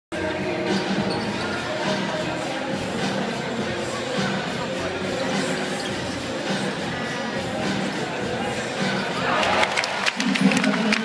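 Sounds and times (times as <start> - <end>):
arena crowd noise: 0.1 - 11.0.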